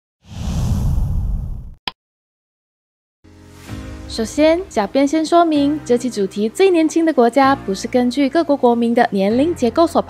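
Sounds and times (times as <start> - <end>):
whoosh with low rumble: 0.2 - 1.8.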